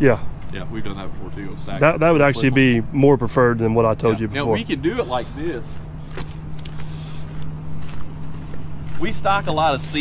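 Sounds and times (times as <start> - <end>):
steady low hum: 0.0 - 10.0
footsteps crunching on gravel: 5.2 - 9.9.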